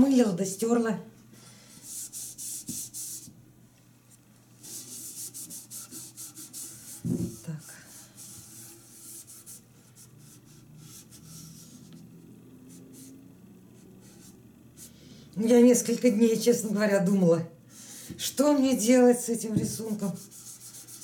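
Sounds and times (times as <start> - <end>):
cloth rubbing on metal can: 4.6 - 9.6, 19.6 - 21.0.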